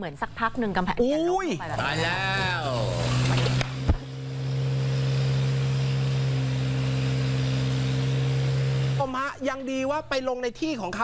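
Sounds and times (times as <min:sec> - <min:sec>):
people talking: 0:09.0 - 0:11.0.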